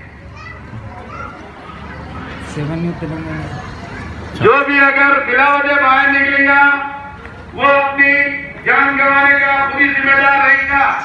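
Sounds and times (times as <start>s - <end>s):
faint indistinct voices: 0.0s - 11.0s
low street hum: 0.0s - 11.0s.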